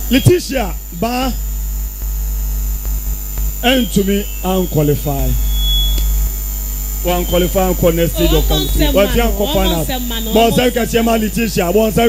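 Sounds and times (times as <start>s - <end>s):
electrical mains hum: 0.0s - 12.0s
person speaking: 7.0s - 12.0s.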